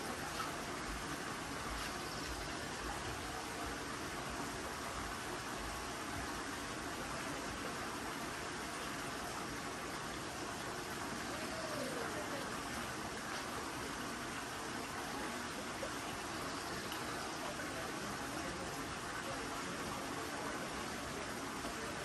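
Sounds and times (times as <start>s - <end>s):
faint distant voices: 0.0s - 22.0s
running water in a stream: 0.0s - 22.0s.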